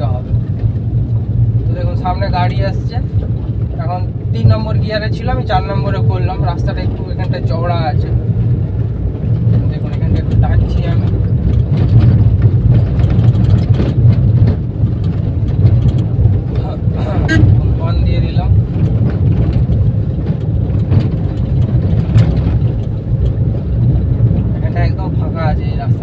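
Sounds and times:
car engine and tyres rumbling: 0.0s - 26.0s.

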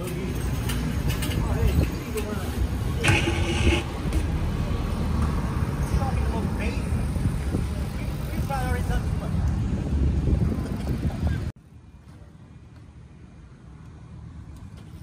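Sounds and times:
wind buffeting microphone: 5.6s - 11.6s.

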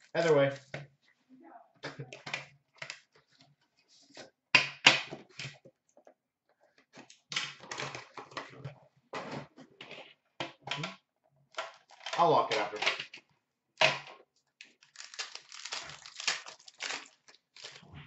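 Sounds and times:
packaging rustling: 14.6s - 17.9s.

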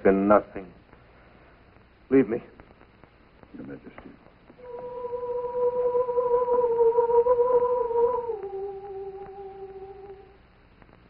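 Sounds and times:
steady held note: 4.6s - 10.4s.

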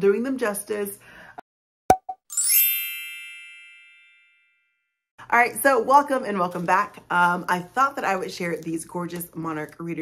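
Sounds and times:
bright chime ding: 1.9s - 4.8s.

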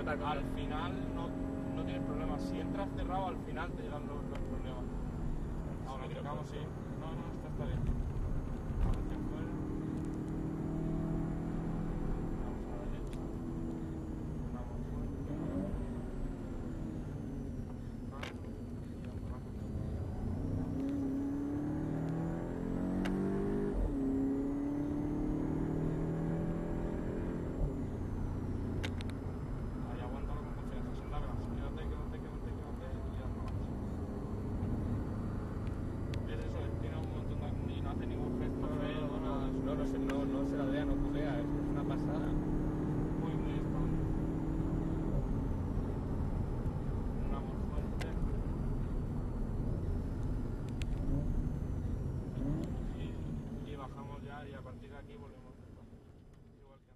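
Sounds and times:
car engine revving: 0.0s - 56.9s.

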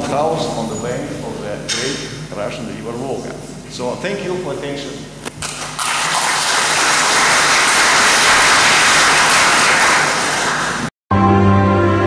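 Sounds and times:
audience applauding: 5.4s - 10.9s.

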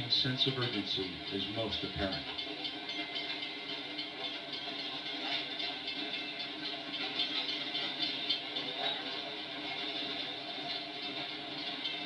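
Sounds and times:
tape hiss: 0.0s - 12.0s.

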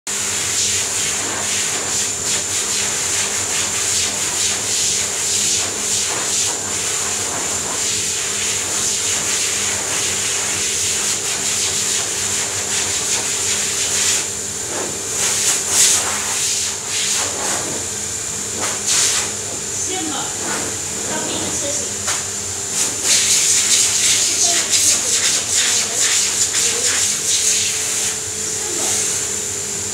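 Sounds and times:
treadmill machinery hum and hiss: 0.1s - 29.9s.

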